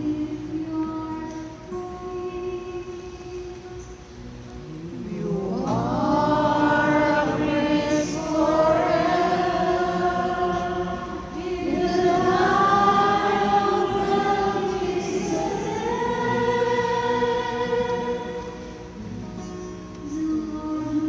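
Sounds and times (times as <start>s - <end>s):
woman singing soprano: 0.0s - 4.1s, 4.7s - 21.0s.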